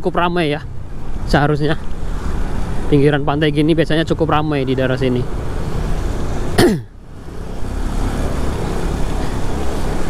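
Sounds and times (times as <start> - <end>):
person coughing: 6.6 - 6.9.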